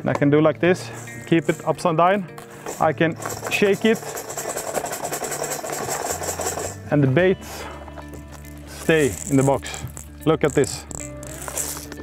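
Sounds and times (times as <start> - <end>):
plastic box being shaken: 2.7 - 6.8, 8.9 - 12.0.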